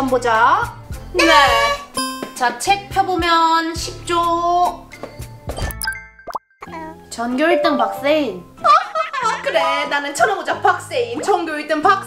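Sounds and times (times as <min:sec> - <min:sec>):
light background music: 0:00.0 - 0:06.0, 0:06.6 - 0:12.0.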